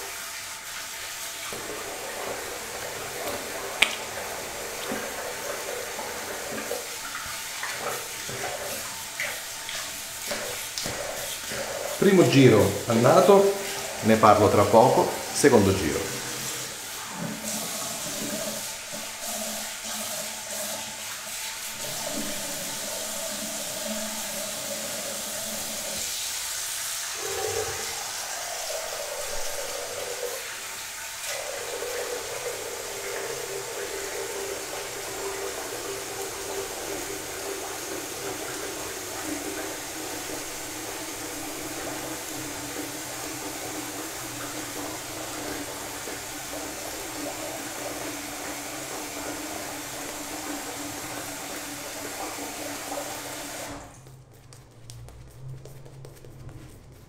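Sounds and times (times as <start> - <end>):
tap water running into sink: 0.0 - 57.0.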